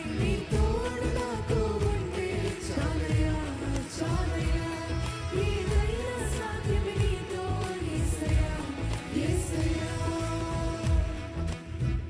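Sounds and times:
band with bass and drums: 0:00.0 - 0:12.0
person singing worship song: 0:00.0 - 0:12.0.

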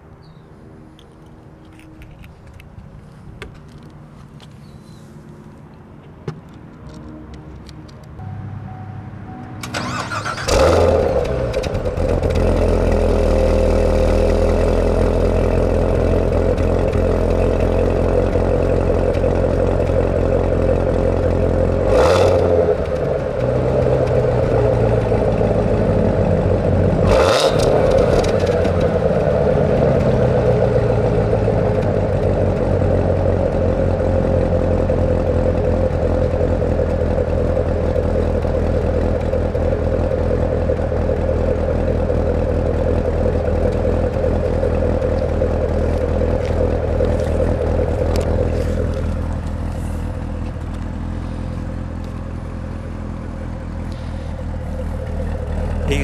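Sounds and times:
car engine starting and idling: 0:06.4 - 0:56.0
sharp engine bursts: 0:09.6 - 0:11.4.

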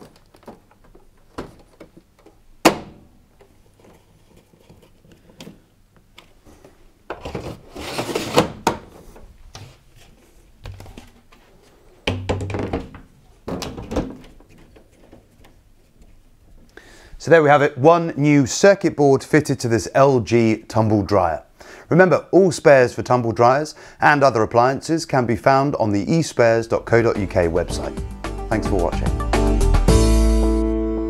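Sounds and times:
plastic panels thunking and scraping: 0:00.0 - 0:05.6, 0:07.1 - 0:09.8, 0:12.0 - 0:15.6.

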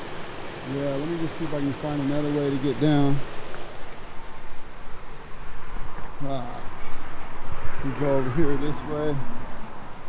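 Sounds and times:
river rushing: 0:00.0 - 0:08.4
freeway traffic noise: 0:00.0 - 0:10.0
footsteps through dry brush: 0:03.3 - 0:07.7.

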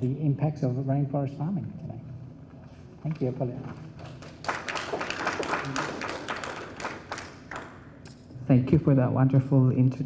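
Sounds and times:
audience applauding: 0:04.0 - 0:07.8.

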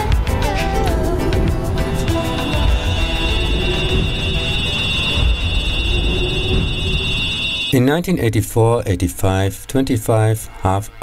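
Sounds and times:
low rumble: 0:00.0 - 0:07.8
high electronic drone: 0:00.1 - 0:08.0.

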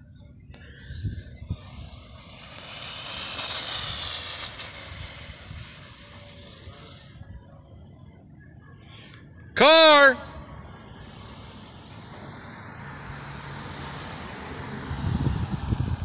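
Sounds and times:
rc car high-pitched whine: 0:00.9 - 0:07.8.

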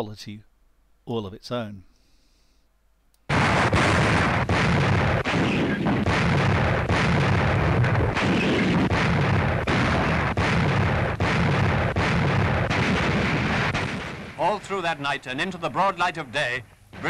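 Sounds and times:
artillery barrage: 0:03.3 - 0:16.1.

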